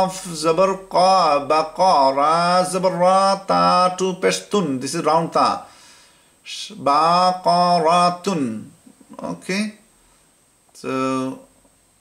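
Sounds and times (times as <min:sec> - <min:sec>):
man chanting: 0:00.0 - 0:05.7, 0:06.5 - 0:09.8.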